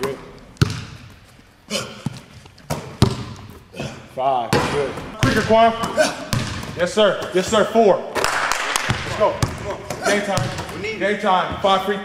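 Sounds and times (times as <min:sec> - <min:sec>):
basketball bouncing on hardwood: 0:00.6 - 0:01.0, 0:02.0 - 0:03.5, 0:04.5 - 0:07.6, 0:08.9 - 0:10.8.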